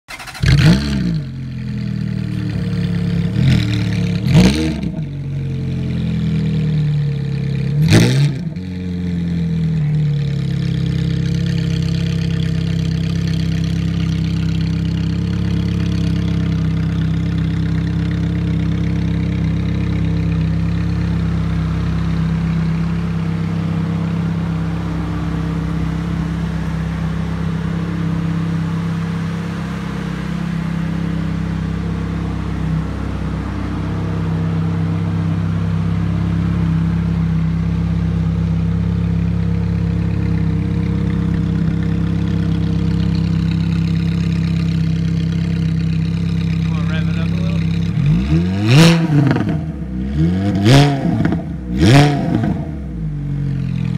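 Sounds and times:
car engine idling: 0.0 - 53.9
car engine revving: 0.1 - 53.9.

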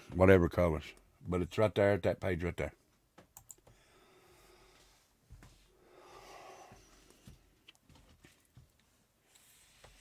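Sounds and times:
faint clicks: 3.2 - 3.8.

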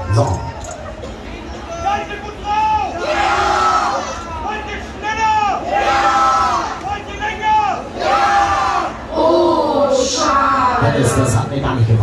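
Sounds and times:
crowd of riders shouting: 1.7 - 9.9.

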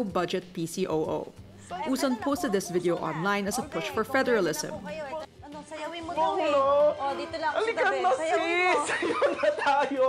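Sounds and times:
man and woman talking: 6.0 - 10.0.

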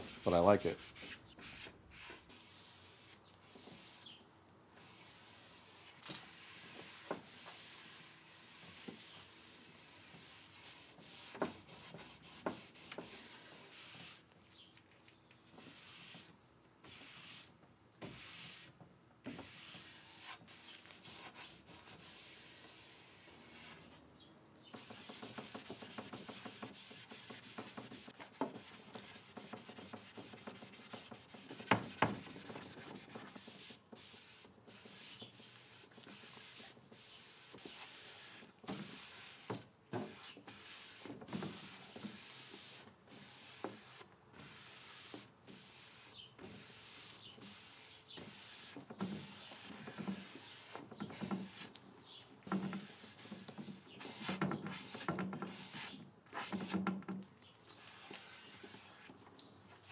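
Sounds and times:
cloth rubbing on wood: 5.8 - 14.2, 19.4 - 23.9, 24.7 - 51.7, 57.8 - 59.1.

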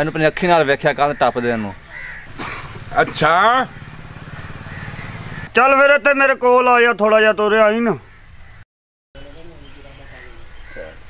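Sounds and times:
small engine idling: 1.9 - 5.5.

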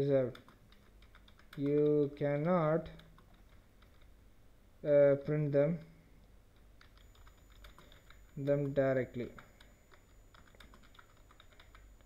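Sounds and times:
computer keyboard typing: 0.2 - 4.1, 6.5 - 12.0.

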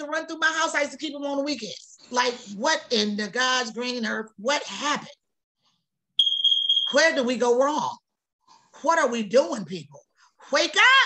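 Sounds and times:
high electronic beep: 6.2 - 7.0.

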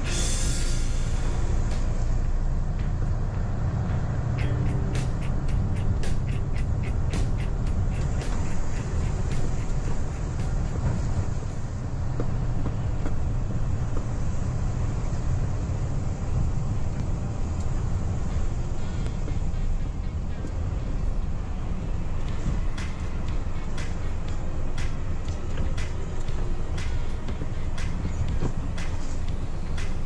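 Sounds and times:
background music: 0.0 - 11.9, 18.3 - 30.0
truck engine rumbling: 0.0 - 30.0
fast ticking beat: 4.4 - 11.8, 22.1 - 30.0.

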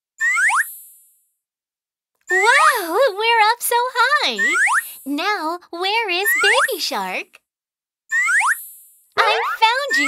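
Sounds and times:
cartoon jump rising glide: 9.2 - 10.0.

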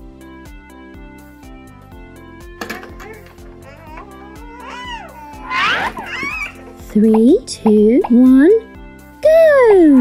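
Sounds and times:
background music with steady beat: 0.0 - 10.0
toddler squealing: 3.0 - 6.9.

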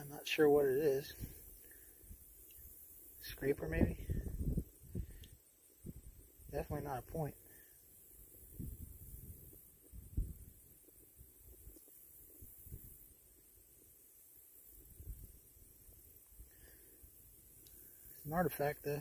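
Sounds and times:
faint low thumps and rumble: 3.6 - 7.1, 8.3 - 13.0.

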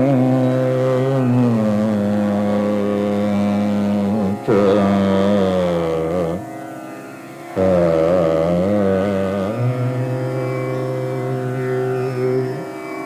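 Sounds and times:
man singing classical vocals: 0.0 - 6.5, 7.6 - 12.6
tanpura drone: 0.0 - 13.0.

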